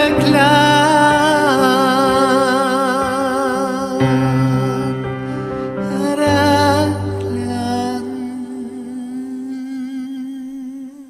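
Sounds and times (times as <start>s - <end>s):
man singing long note: 0.0s - 11.0s.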